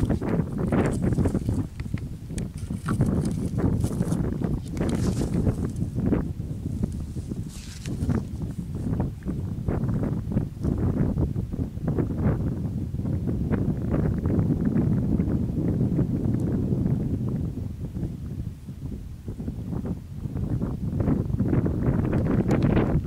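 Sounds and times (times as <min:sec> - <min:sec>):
shells clicking and grass rustling: 0:00.0 - 0:05.9
wind buffeting microphone: 0:00.0 - 0:23.0.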